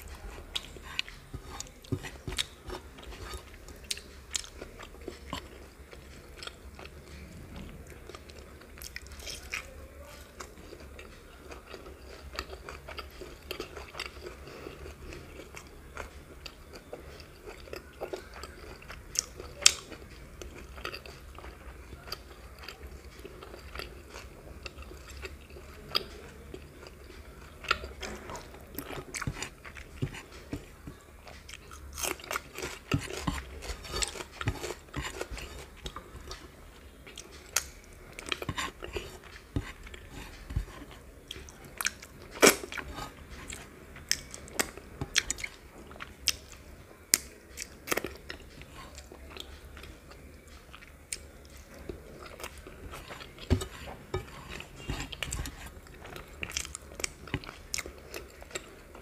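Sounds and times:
close chewing: 0.0 - 59.0
faint low hum: 0.0 - 59.0
fingers working rice on plate: 32.3 - 36.6.

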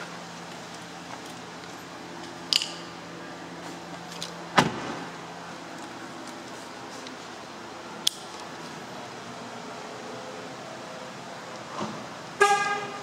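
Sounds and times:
steady background hum: 0.0 - 13.0
car horn toot: 12.4 - 13.0.

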